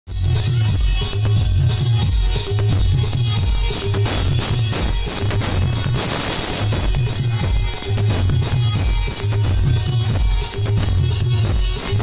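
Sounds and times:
live band music: 0.1s - 12.0s
pulsing bass beat: 0.1s - 12.0s.

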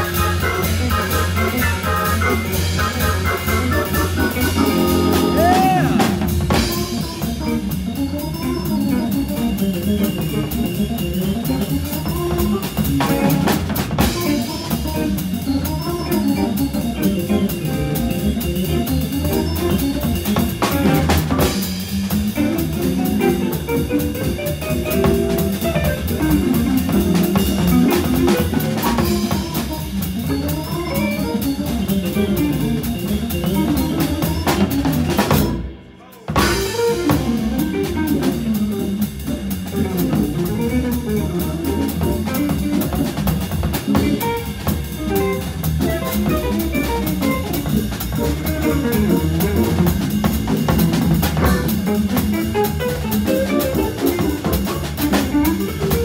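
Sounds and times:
electric guitar: 0.0s - 35.7s, 36.4s - 56.0s
jazz organ: 0.0s - 56.0s
swinging drum kit: 0.0s - 56.0s.

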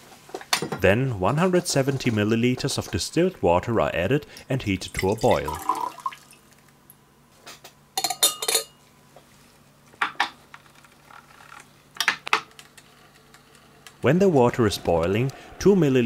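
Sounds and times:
faint steady hum: 0.0s - 16.0s
glassware clinking: 8.0s - 8.8s.

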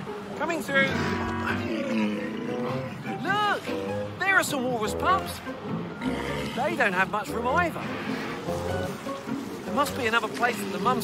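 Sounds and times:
background music: 0.0s - 11.0s
walruses bellowing: 0.6s - 7.0s.

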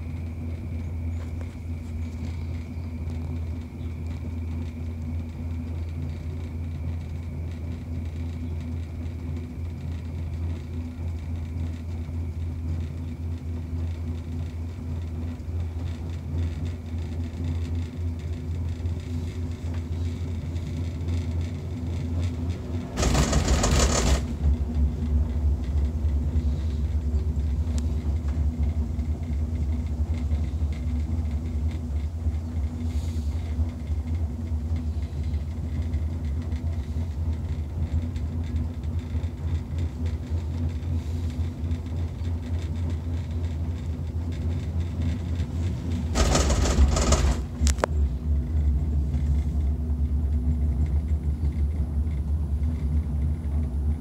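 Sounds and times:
faint steady hum: 0.0s - 54.0s
gondola cabin rumbling on cable: 0.0s - 54.0s
loud burst of noise: 23.0s - 24.6s, 46.1s - 47.7s.

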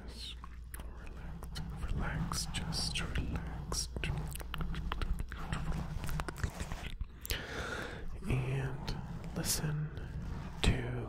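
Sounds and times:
breathy whispering: 0.0s - 11.0s
long breath: 7.2s - 8.1s.

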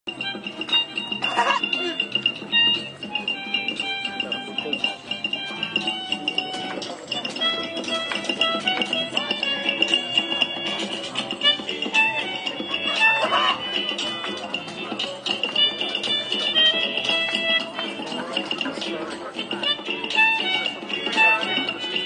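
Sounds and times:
music with held high note: 0.1s - 22.0s
people's voices: 0.1s - 22.0s.

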